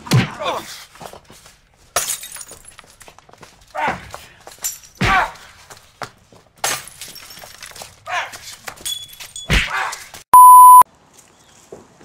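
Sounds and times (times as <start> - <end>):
electronic beep tone: 10.4 - 10.8.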